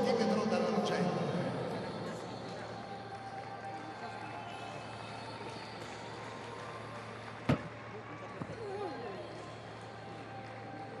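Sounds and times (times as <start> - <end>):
stadium crowd murmur: 0.0 - 11.0.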